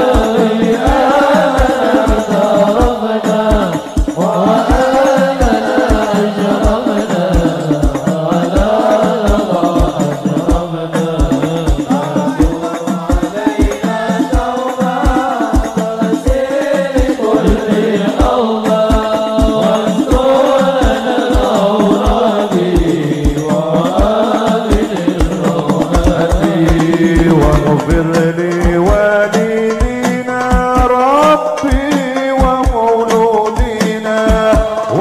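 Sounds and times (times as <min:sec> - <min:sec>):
deep drum beat: 0:00.0 - 0:35.0
devotional chanting song: 0:00.0 - 0:35.0.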